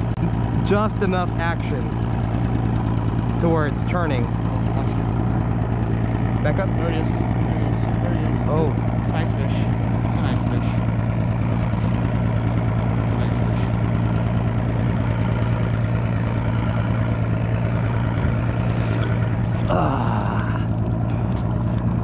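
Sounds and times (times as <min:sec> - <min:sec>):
outboard motor humming: 0:00.0 - 0:22.0.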